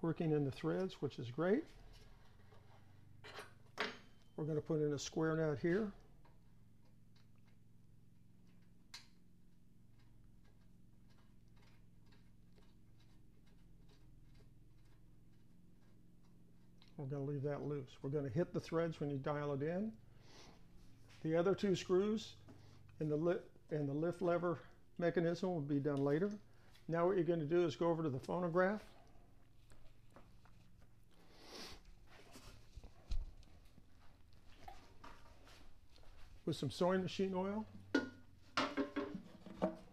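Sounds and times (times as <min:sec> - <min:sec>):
low steady hum: 0:00.0 - 0:39.9
faint footsteps: 0:28.0 - 0:39.9.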